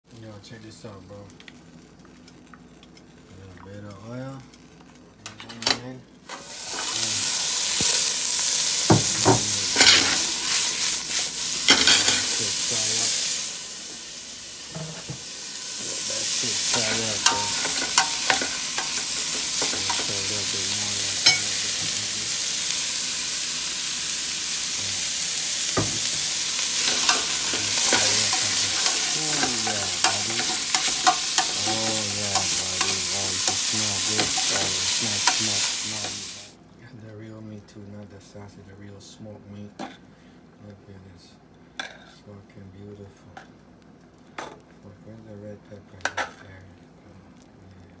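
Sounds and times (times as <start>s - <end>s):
meat and onions sizzling in oil: 6.2s - 36.6s
metal utensil stirring a pot: 16.7s - 20.2s, 21.2s - 21.5s, 26.8s - 35.8s
utensil clinking against pot: 16.7s - 20.2s, 21.2s - 21.5s, 26.8s - 35.4s.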